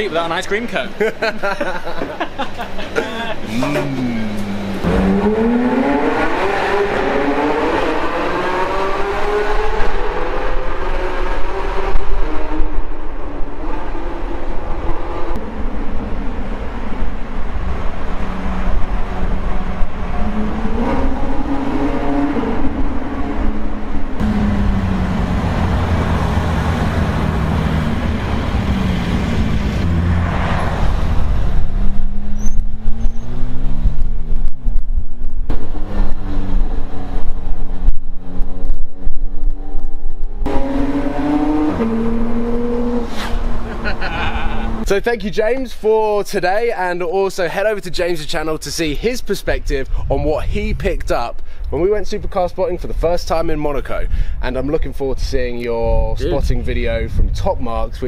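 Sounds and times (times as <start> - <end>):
car engine accelerating: 3.4 - 44.9.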